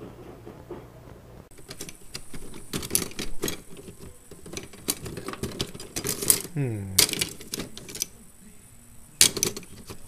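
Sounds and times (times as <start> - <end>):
cutlery clinking in a drawer: 1.6 - 8.1, 9.2 - 10.0.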